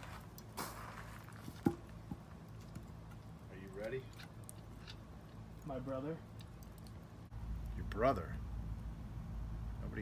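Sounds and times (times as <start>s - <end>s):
wood fire crackling: 0.0s - 9.1s.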